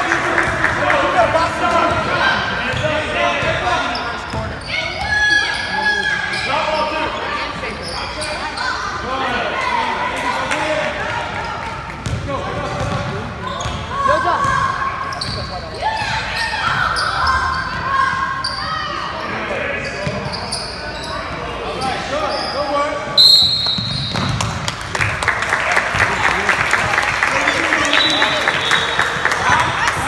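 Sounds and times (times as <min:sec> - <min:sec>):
spectators' voices in echoing hall: 0:00.0 - 0:30.0
sneakers squeaking on hardwood: 0:02.7 - 0:05.7, 0:12.0 - 0:18.9, 0:23.4 - 0:24.6
basketball bouncing: 0:12.0 - 0:14.6, 0:23.7 - 0:24.7
referee's whistle: 0:23.2 - 0:24.3, 0:27.8 - 0:29.2.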